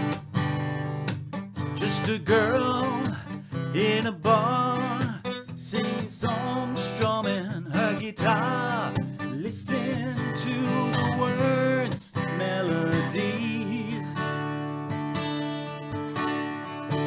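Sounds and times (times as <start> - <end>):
acoustic guitar strumming: 0.0 - 17.0
man singing: 1.8 - 14.4.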